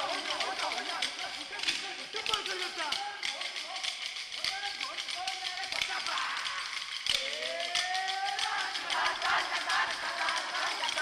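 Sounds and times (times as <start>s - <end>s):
wooden sticks striking together: 0.0s - 11.0s
person singing: 5.8s - 11.0s.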